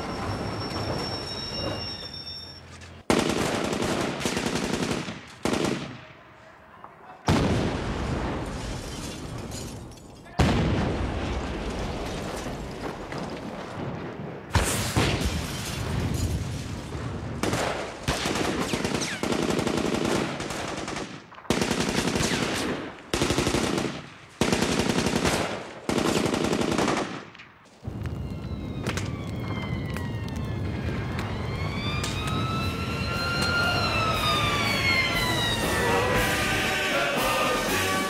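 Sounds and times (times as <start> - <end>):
automatic gunfire bursts: 3.1 - 6.0, 17.4 - 27.2
wailing siren: 27.9 - 38.0.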